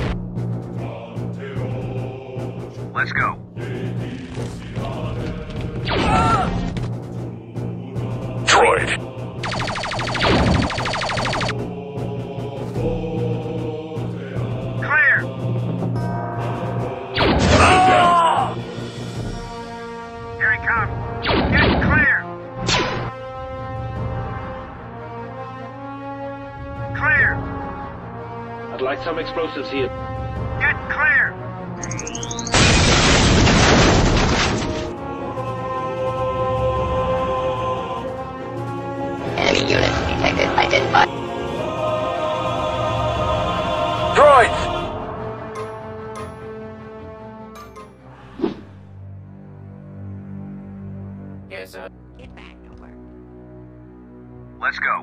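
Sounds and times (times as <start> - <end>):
background music: 0.0 - 55.0
rapid-fire blaster shots: 9.4 - 11.6.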